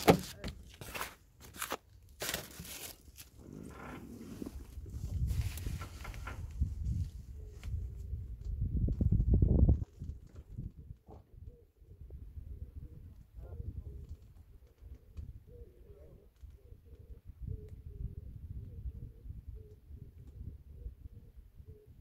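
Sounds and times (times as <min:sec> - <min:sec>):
wind buffeting microphone: 0:04.4 - 0:22.0.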